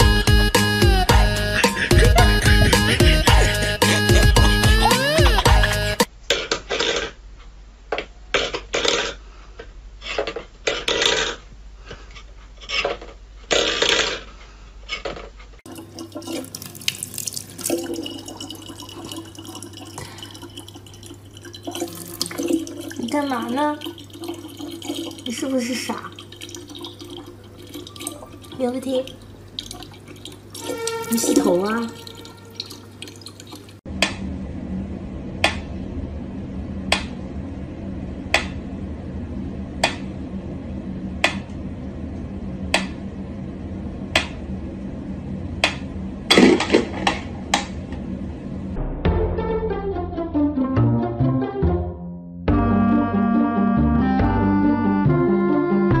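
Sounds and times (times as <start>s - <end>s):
water splashes and drips: 15.7s - 33.8s
water stream into plastic bottle: 15.7s - 33.8s.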